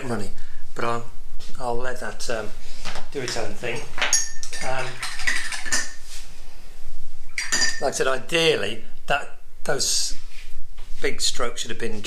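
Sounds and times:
paintbrush clinking on dish: 0:03.2 - 0:06.0, 0:07.4 - 0:08.0.

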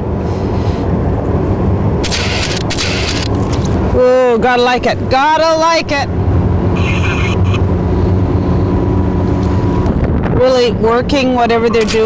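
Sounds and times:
powerboat engine rumble: 0:00.0 - 0:12.0
wind buffeting microphone: 0:07.7 - 0:12.0.

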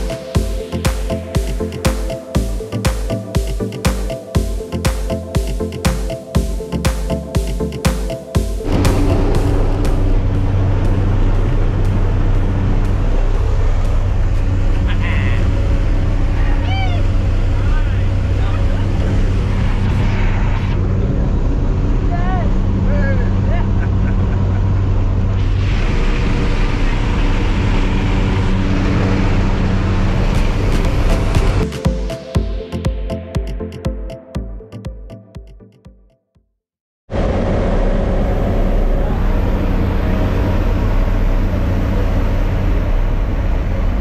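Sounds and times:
rushing air: 0:08.4 - 0:16.4
plane engine and propeller drone: 0:08.6 - 0:31.6, 0:37.1 - 0:44.0.

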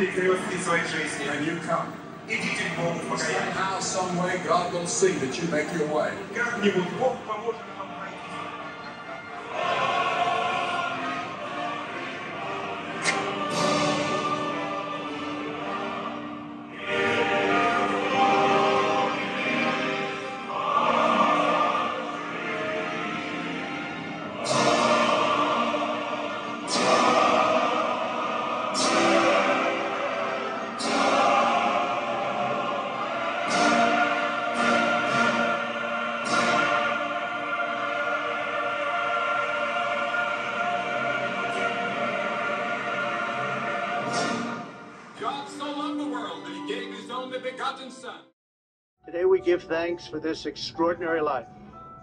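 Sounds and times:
men's choir singing: 0:02.3 - 0:07.0, 0:07.8 - 0:44.8.

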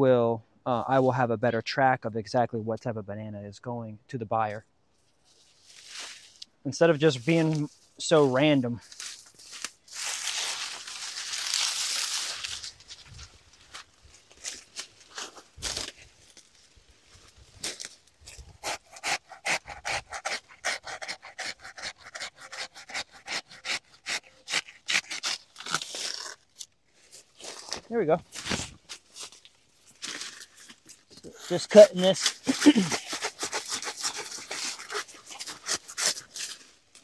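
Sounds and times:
banana leaves rustling and tearing: 0:08.8 - 0:19.3, 0:20.0 - 0:37.0
rapid cutting strokes: 0:18.6 - 0:26.3, 0:31.4 - 0:36.5.

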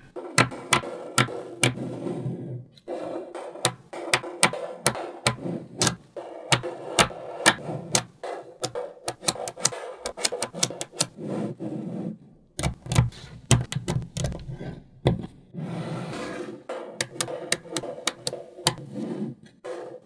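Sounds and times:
magnetic balls clicking: 0:03.6 - 0:11.2, 0:12.6 - 0:14.5, 0:17.0 - 0:18.8.

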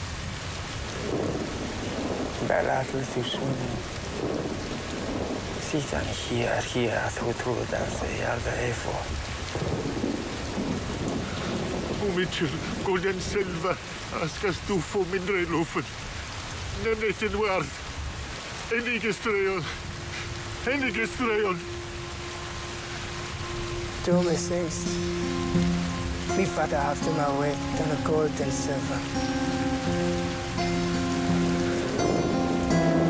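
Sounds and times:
steady rain: 0:00.0 - 0:33.0
thunder rumbling: 0:00.0 - 0:33.0
held film score notes: 0:18.6 - 0:33.0.

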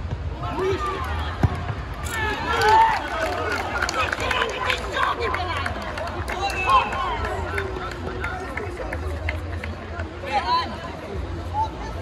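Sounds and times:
players shouting: 0:00.4 - 0:05.5.

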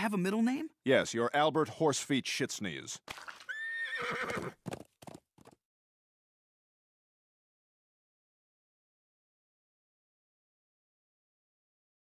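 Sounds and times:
cartoon horse whinnying: 0:03.3 - 0:04.6.

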